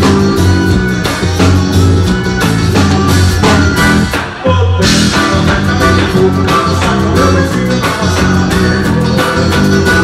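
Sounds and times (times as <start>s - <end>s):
live band with accordion: 0.0s - 10.0s.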